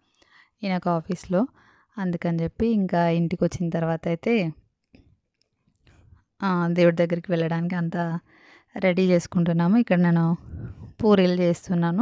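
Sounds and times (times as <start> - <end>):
woman speaking: 0.6 - 4.6, 6.4 - 8.2, 8.8 - 12.0.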